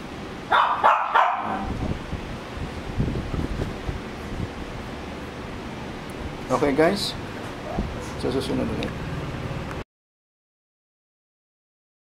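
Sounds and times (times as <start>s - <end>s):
small dog barking: 0.5s - 1.8s.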